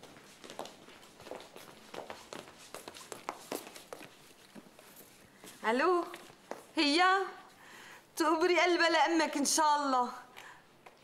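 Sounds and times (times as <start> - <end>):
quiet footsteps: 0.0 - 7.6.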